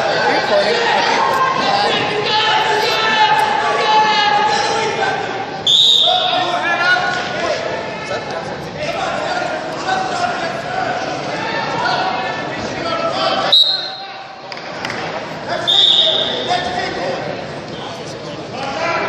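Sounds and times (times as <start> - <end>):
people shouting: 0.0 - 5.4
referee's whistle blasts: 5.6 - 6.4, 13.5 - 14.1, 15.6 - 16.5.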